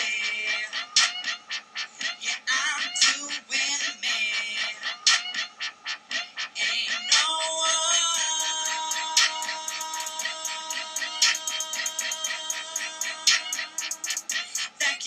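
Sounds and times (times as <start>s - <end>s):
man singing over a beat: 2.1s - 5.3s, 6.2s - 15.0s
sharp beat hits: 8.2s - 14.8s.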